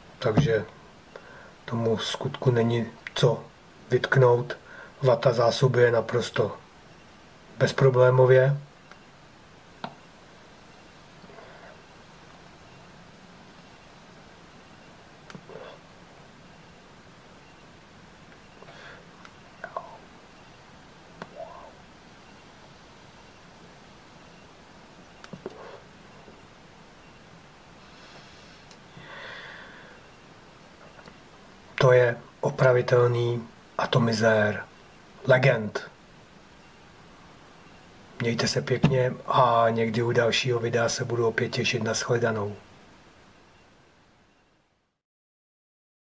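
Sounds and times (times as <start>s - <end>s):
soft breathy inhale: 1.2s - 1.6s, 4.6s - 5.0s, 18.6s - 19.1s, 27.8s - 30.1s.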